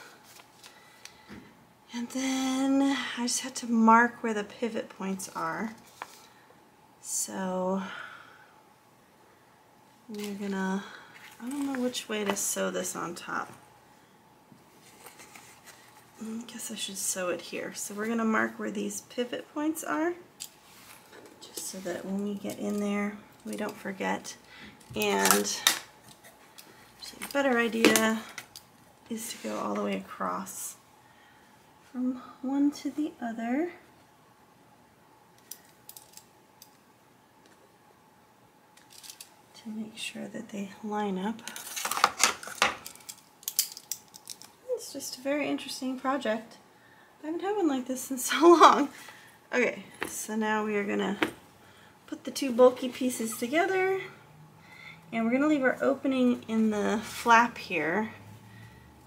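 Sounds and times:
small handling sounds: 0.0s - 1.4s, 10.0s - 12.6s, 14.5s - 16.6s, 20.4s - 30.1s, 35.3s - 37.6s, 38.7s - 39.5s, 41.4s - 44.8s.

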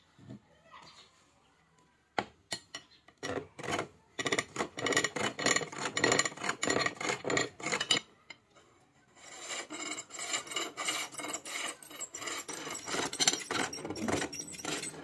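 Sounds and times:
lathe tool scraping wood: 3.3s - 8.0s, 9.2s - 15.0s.

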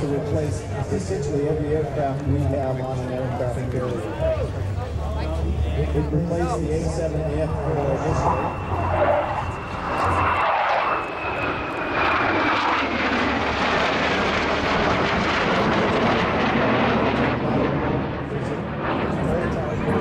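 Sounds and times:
fighter jets flying past: 0.0s - 20.0s
faint high whine: 5.0s - 12.8s.

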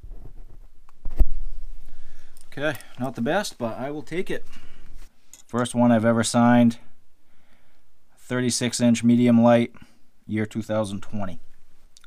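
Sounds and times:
man speaking: 2.5s - 4.6s, 5.5s - 6.9s, 8.2s - 11.4s.

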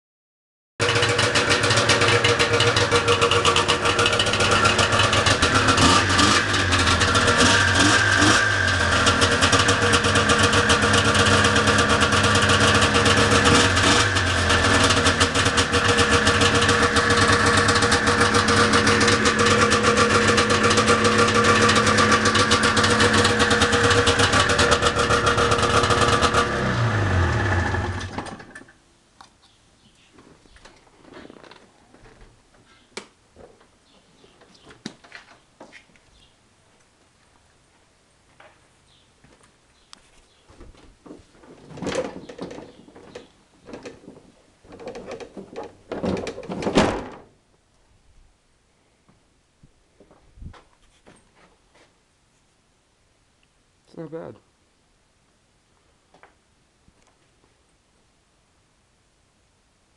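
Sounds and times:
snowmobile engine idling: 0.8s - 28.1s
engine winding down: 0.8s - 28.7s.

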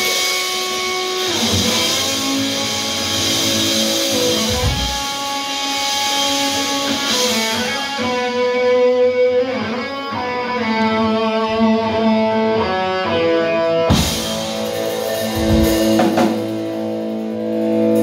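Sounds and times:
drums and cymbals: 0.0s - 9.4s, 13.9s - 18.0s
bass guitar: 0.0s - 18.0s
electric guitars ringing notes: 0.0s - 18.0s.

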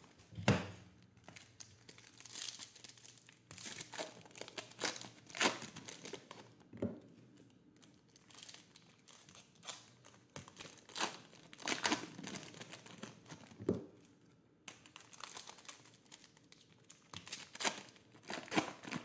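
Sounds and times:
foil wrappers crinkling: 1.2s - 6.5s, 7.4s - 13.6s, 14.7s - 19.0s.

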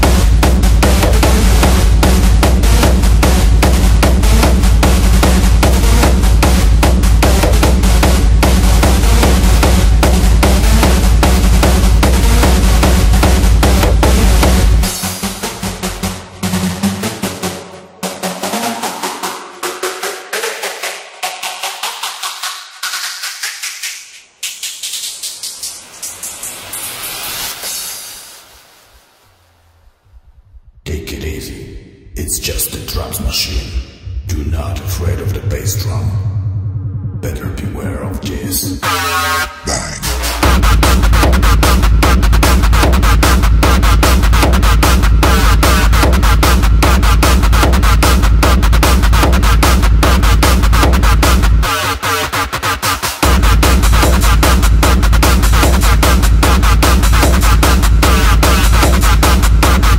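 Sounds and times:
pounding kick drum and bass: 0.0s - 17.4s, 33.0s - 59.9s
hardstyle electronic dance track: 0.0s - 29.0s, 32.2s - 59.9s.

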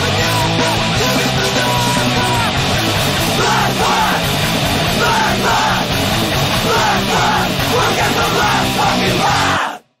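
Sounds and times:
person yelling vocals: 0.0s - 2.6s, 3.3s - 5.9s, 6.5s - 9.8s
hardcore punk band playing: 0.0s - 9.8s.

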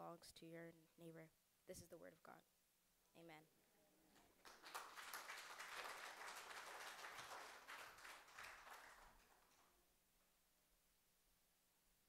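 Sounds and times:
congregation applauding: 4.3s - 9.8s.

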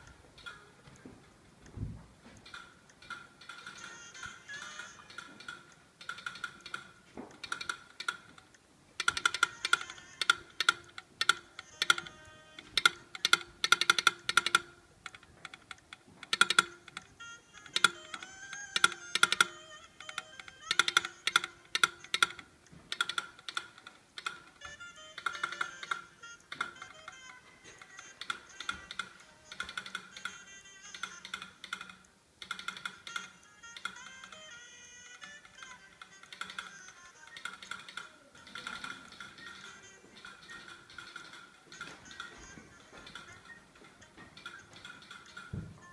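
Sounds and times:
telegraph clicking morse code: 2.4s - 8.4s, 9.0s - 45.9s
high morse code beeps: 37.2s - 45.4s.

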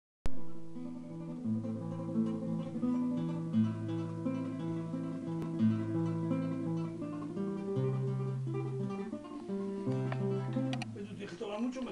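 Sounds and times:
classical guitar fingerstyle: 0.3s - 11.9s.

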